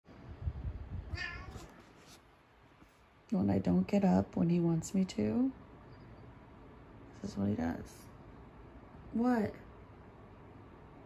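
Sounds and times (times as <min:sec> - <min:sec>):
cat meowing: 0:01.1 - 0:01.8.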